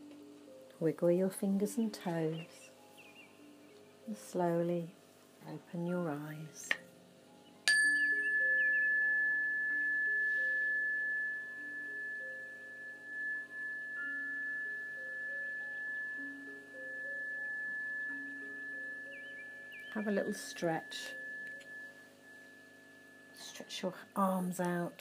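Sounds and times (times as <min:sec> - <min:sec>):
soft background music: 0:00.0 - 0:25.0
chime bar ringing: 0:07.7 - 0:23.8.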